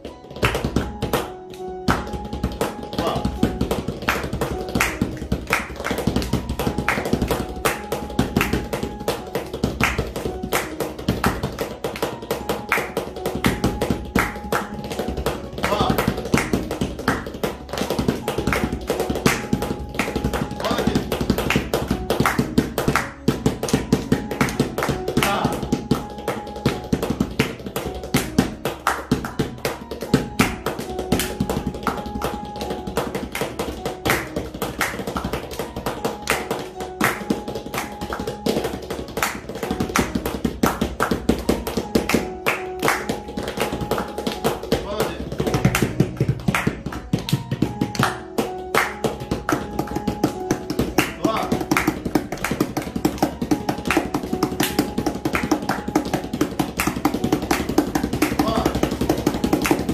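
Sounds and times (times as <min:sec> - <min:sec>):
electronic keyboard melody: 0:00.0 - 0:59.9
hands striking instrument case: 0:00.0 - 0:59.9
tabla drumming: 0:00.0 - 0:59.9.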